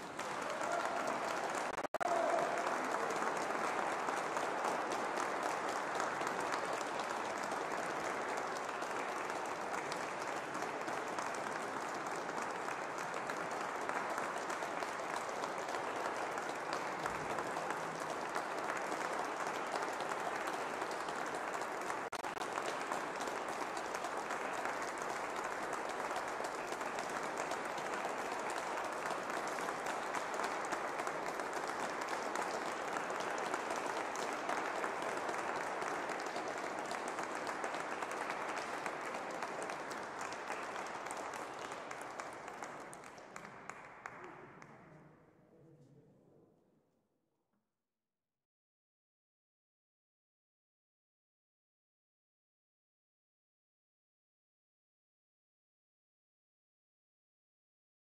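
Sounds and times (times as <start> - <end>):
audience applauding: 0.0 - 44.8.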